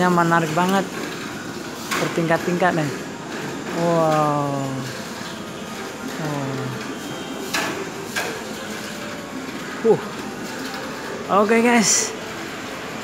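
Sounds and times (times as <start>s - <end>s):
shopping mall hubbub: 0.0s - 13.0s.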